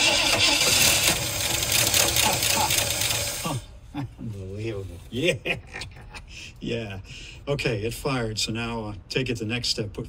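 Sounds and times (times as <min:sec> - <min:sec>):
engine cranking and firing: 0:00.0 - 0:03.6
person laughing: 0:01.9 - 0:04.3, 0:05.3 - 0:06.6.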